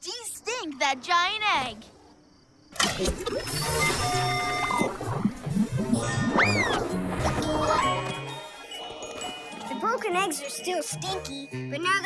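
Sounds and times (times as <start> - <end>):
cartoon background music: 3.0 - 12.0
swooping whistle: 3.5 - 5.0, 6.0 - 7.0.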